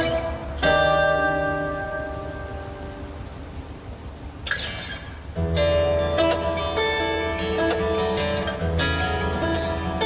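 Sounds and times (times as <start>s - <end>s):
acoustic guitar chord strum: 0.0s - 10.0s
soft hiss: 0.0s - 10.0s.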